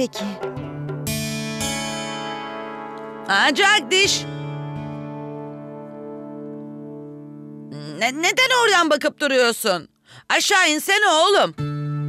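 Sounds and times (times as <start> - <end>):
background music steady chord: 0.0 - 8.1, 11.6 - 12.0.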